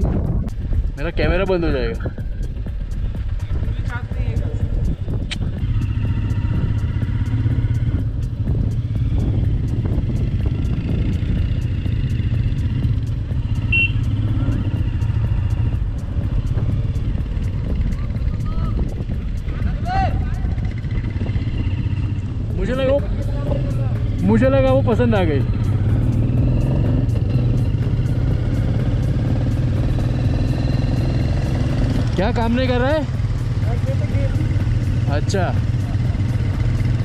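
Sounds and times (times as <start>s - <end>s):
motorcycle engine running: 0.0s - 37.0s
wind rumble on microphone: 0.0s - 37.0s.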